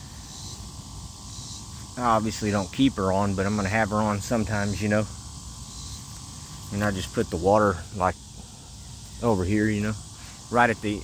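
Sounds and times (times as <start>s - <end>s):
insects hissing: 0.0s - 11.0s.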